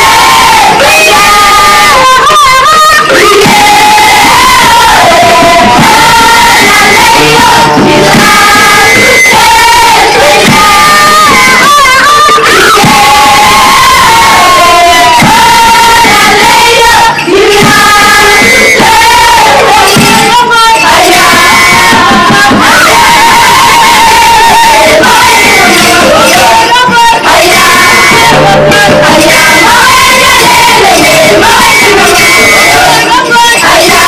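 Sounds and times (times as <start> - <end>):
group of voices singing: 0.0 - 34.0.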